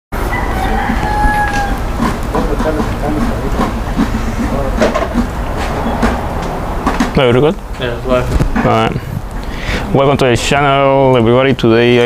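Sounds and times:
rooster crowing: 0:00.2 - 0:02.1
low machinery rumble: 0:00.2 - 0:11.4.

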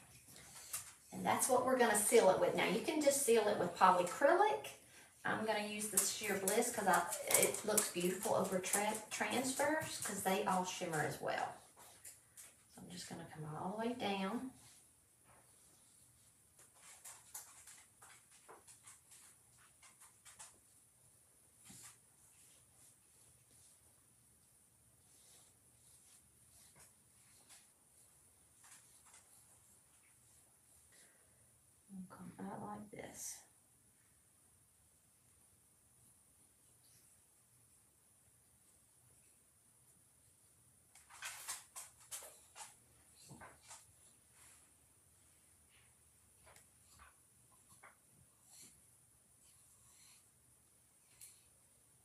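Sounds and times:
paintbrush swishing on plastic: 0:14.3 - 0:20.8, 0:21.6 - 0:24.1, 0:25.0 - 0:31.1
paintbrush swishes: 0:25.0 - 0:28.1.

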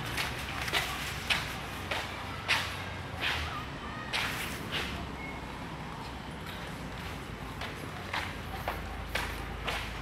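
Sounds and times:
footsteps on concrete: 0:06.4 - 0:10.0.

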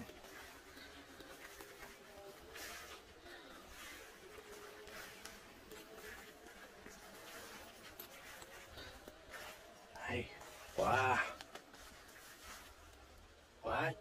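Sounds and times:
soft rustles: 0:00.0 - 0:13.6.

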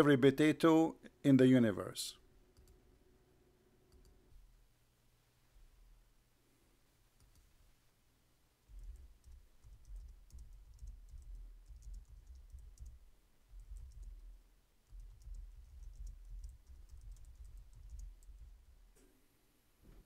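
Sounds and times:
keyboard and mouse clicks: 0:02.6 - 0:02.8, 0:03.9 - 0:04.2, 0:07.2 - 0:07.5, 0:08.7 - 0:13.0, 0:13.6 - 0:18.5.

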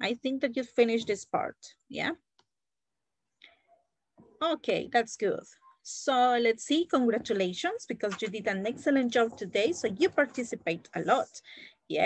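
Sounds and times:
woman speaking: 0:00.0 - 0:02.2, 0:04.4 - 0:12.0.

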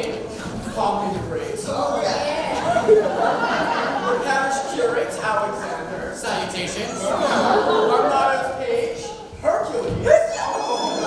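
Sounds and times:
actor speaking in echoing hall: 0:00.0 - 0:11.0.

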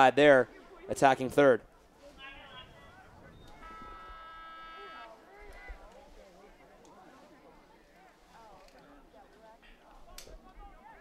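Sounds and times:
distant shouts and voices: 0:00.0 - 0:11.0.

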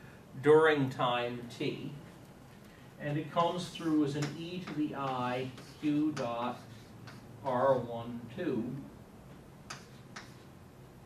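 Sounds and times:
chalk tapping blackboard: 0:03.7 - 0:07.6, 0:09.7 - 0:10.5.

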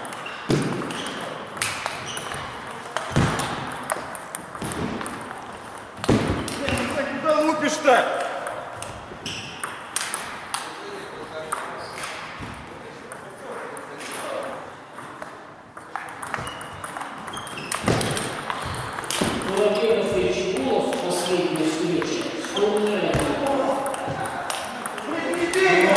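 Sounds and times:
table tennis balls clicking: 0:00.0 - 0:07.1, 0:08.1 - 0:25.9
voices in a hall: 0:01.4 - 0:25.9.

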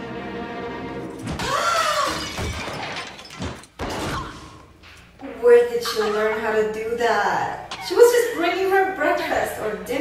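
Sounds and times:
glass shattering: 0:02.1 - 0:04.3.

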